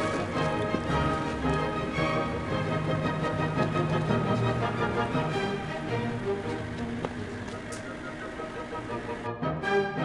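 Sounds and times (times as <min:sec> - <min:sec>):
instrumental music with held notes: 0:00.0 - 0:10.0.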